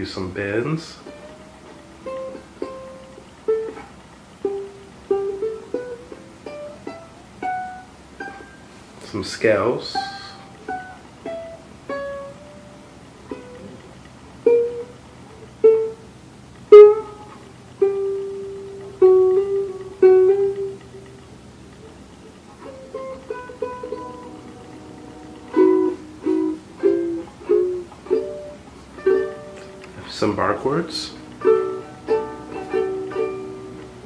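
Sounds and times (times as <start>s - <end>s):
ukulele plucked notes: 0.0s - 34.0s.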